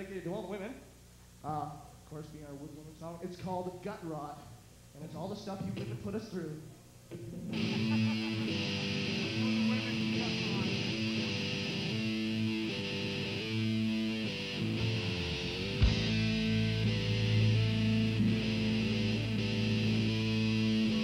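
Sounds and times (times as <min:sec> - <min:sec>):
electric guitar playing held notes: 0:07.2 - 0:21.0
heavy low bass: 0:07.6 - 0:21.0.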